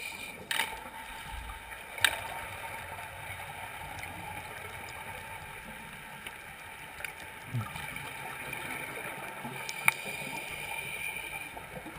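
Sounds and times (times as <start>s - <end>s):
underwater hiss: 0.0s - 0.5s, 8.8s - 11.9s
faint clicks: 3.9s - 5.0s, 5.7s - 7.8s, 9.4s - 11.9s.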